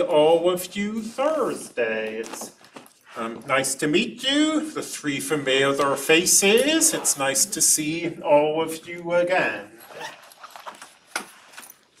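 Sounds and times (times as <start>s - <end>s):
small handling noises: 1.0s - 3.7s, 9.8s - 12.0s.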